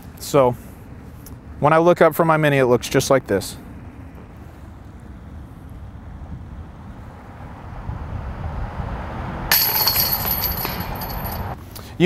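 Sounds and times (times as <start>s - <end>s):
low outdoor rumble: 0.0s - 12.0s
chains jangling in basket: 9.6s - 11.6s.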